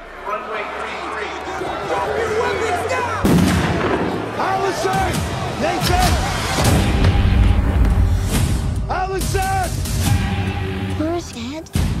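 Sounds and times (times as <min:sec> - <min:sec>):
loud explosion boom: 0:03.2 - 0:04.3.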